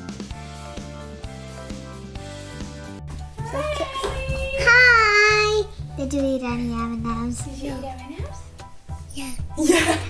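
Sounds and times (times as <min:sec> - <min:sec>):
background music with beat: 0:00.0 - 0:10.0
toddler singing: 0:03.5 - 0:05.7.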